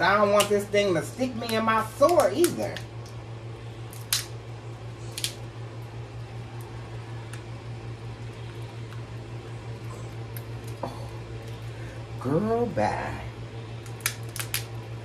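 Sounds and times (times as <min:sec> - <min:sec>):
steady low hum: 0:00.0 - 0:15.0
lobster shell cracking: 0:03.9 - 0:04.4, 0:05.1 - 0:05.4, 0:10.2 - 0:11.6, 0:13.8 - 0:14.8.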